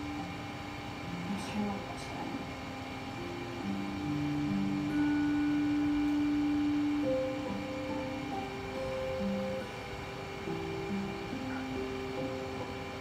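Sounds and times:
slow music from television speaker: 0.0s - 13.0s.

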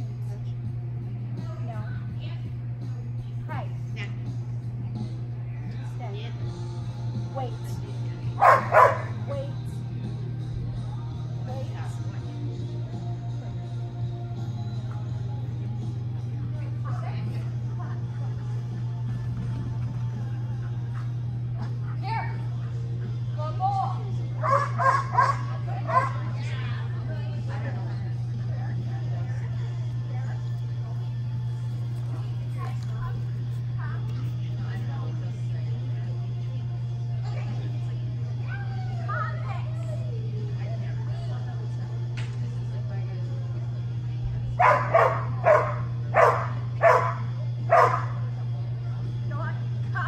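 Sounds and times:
steady low hum: 0.0s - 50.0s
dog barking: 8.4s - 9.3s, 24.4s - 26.3s, 44.6s - 48.2s.

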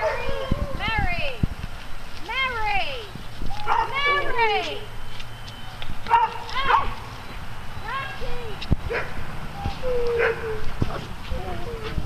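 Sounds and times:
dog barking: 3.7s - 4.2s, 6.1s - 6.9s, 8.9s - 9.2s, 10.2s - 10.5s.

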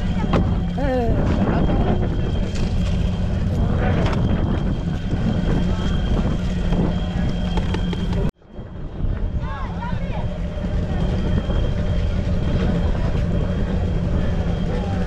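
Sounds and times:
boat engine humming: 0.0s - 15.0s
wind on microphone: 0.0s - 15.0s.

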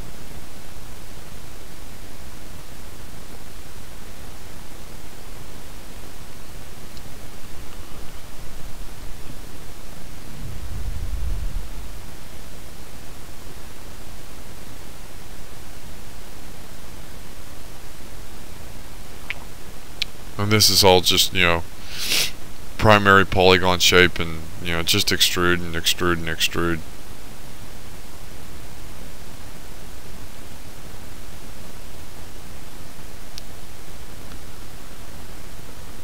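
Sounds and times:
microphone hiss: 0.0s - 36.0s.

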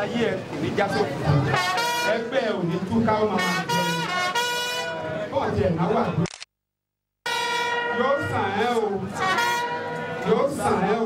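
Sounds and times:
man speaking over a microphone: 0.0s - 4.3s, 4.9s - 6.2s, 7.9s - 9.5s, 10.2s - 11.0s.

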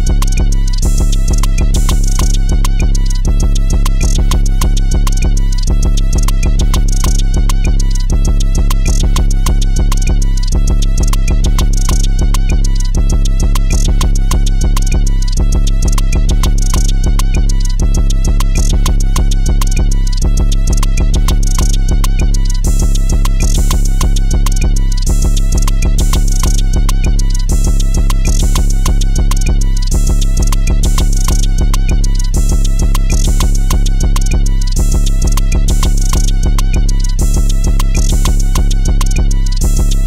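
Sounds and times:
instrumental hip-hop beat: 0.0s - 40.0s.

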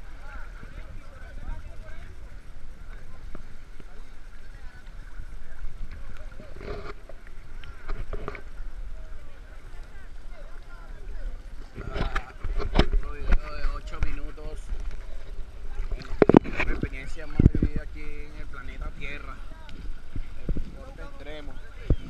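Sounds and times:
low rumble of water: 0.0s - 22.0s
people talking indistinctly: 0.0s - 22.0s
wind on microphone: 0.0s - 22.0s
water slapping camera housing: 11.8s - 15.1s, 15.8s - 17.7s.

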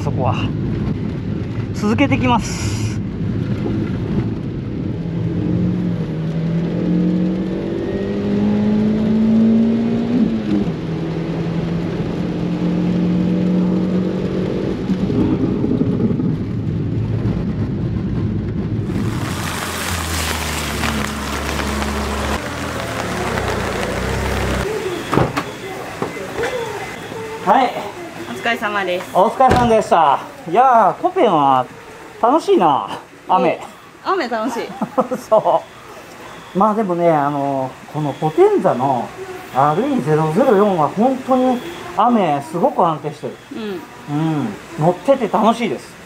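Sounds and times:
low rumble: 0.0s - 6.6s, 14.4s - 24.8s
rush of water spray and rain: 0.0s - 46.0s
turbo car engine accelerating: 3.1s - 25.9s.

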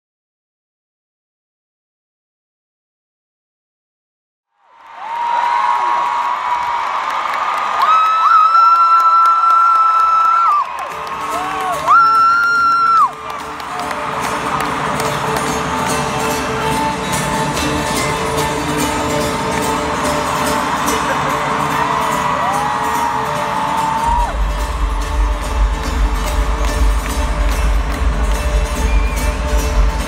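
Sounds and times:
stadium crowd cheering and singing: 4.6s - 30.0s
amplified live band music: 12.9s - 30.0s.

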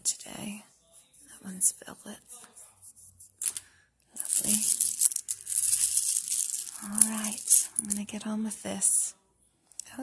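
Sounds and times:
buttons clattering and rattling: 4.2s - 8.0s.

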